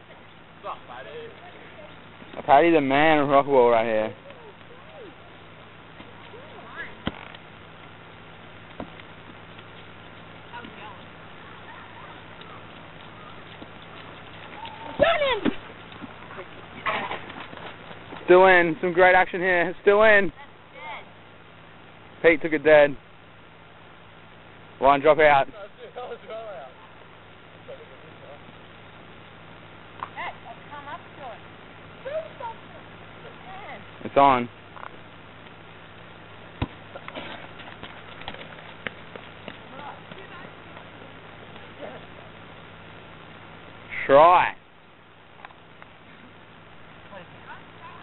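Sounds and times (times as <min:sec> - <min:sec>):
low steady hum: 0:00.0 - 0:48.0.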